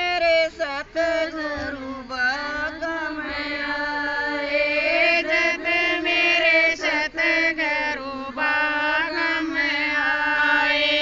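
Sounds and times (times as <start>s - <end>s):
women singing unaccompanied: 0.0s - 11.0s.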